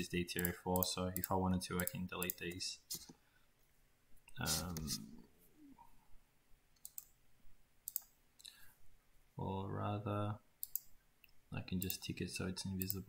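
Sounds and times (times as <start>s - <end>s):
computer mouse clicks: 6.8s - 7.2s, 7.8s - 8.2s, 10.6s - 12.1s, 12.8s - 13.0s.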